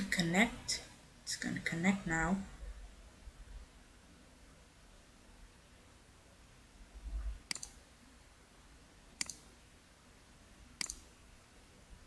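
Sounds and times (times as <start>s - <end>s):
computer mouse clicking: 7.4s - 7.8s, 9.2s - 9.5s, 10.8s - 11.1s.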